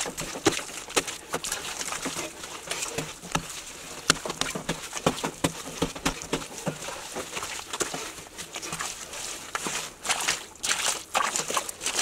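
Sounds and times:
hoe chopping into wet mud: 0:00.0 - 0:02.1, 0:02.7 - 0:08.0.

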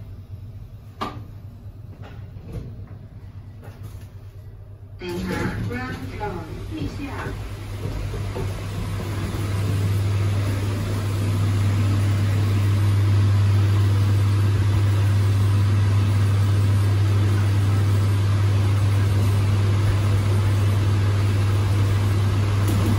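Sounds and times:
lift running with low hum: 0:00.0 - 0:22.9.

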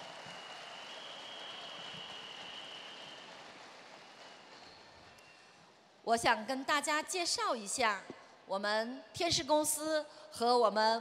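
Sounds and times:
audience applause: 0:00.0 - 0:05.5.

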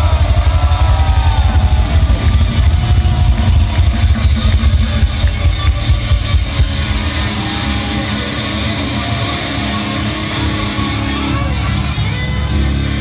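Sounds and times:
pounding drums: 0:00.0 - 0:09.0
distorted electric guitars: 0:00.0 - 0:13.0
heavy metal band playing live: 0:00.0 - 0:13.0.

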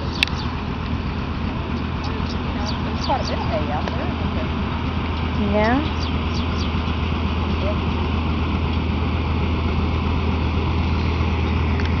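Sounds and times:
tractor engine running under load: 0:00.0 - 0:12.0.

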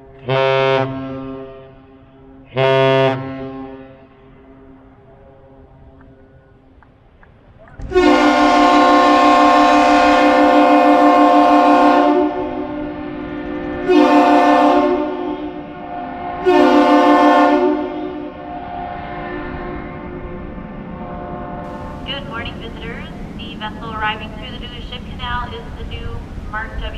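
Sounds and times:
ship horn blasts: 0:00.2 - 0:06.7, 0:07.8 - 0:26.9.

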